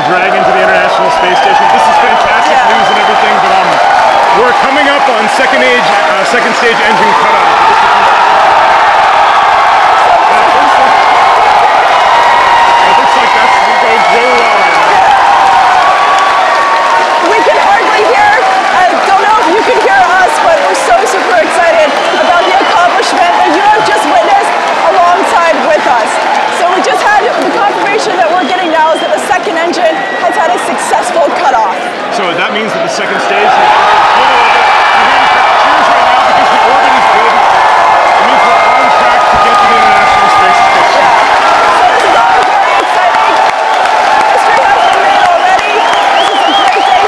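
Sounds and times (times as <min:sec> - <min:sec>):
crowd cheering and whooping: 0:00.0 - 0:32.1, 0:32.9 - 0:47.0
crowd clapping: 0:00.0 - 0:47.0.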